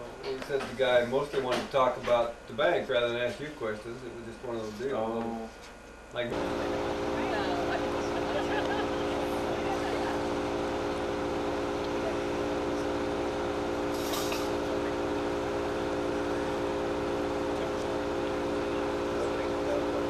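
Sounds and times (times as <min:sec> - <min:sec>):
steady tonal hum: 0:06.2 - 0:20.0
brief hiss: 0:13.9 - 0:14.8.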